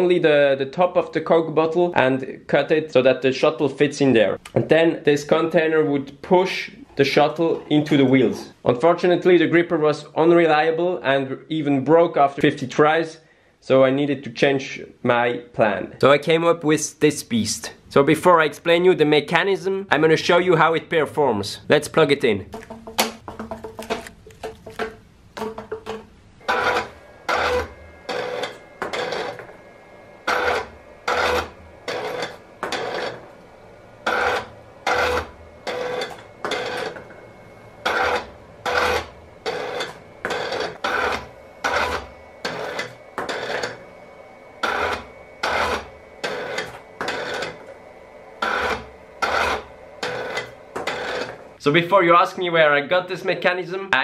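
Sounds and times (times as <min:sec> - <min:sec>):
stepper motors whirring: 0:26.4 - 0:47.7, 0:48.4 - 0:51.4.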